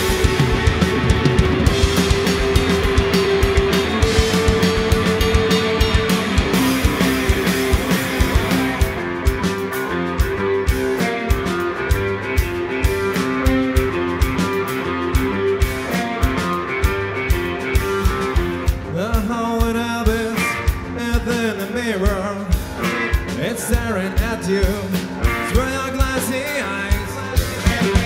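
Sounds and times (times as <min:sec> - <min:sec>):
bass guitar: 0:00.0 - 0:28.0
distorted electric guitars: 0:00.0 - 0:28.0
steady drum beat: 0:00.0 - 0:28.0.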